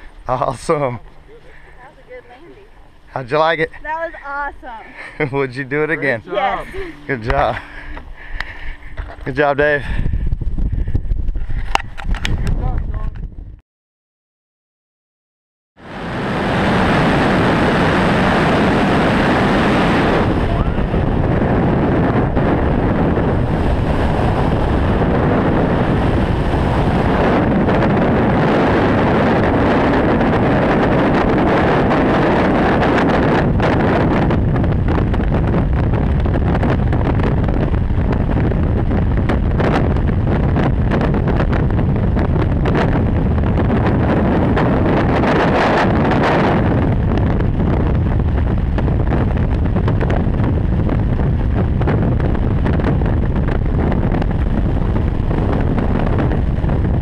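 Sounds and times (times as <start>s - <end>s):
freefall wind rushing over microphone: 0.0s - 13.6s, 15.8s - 57.0s.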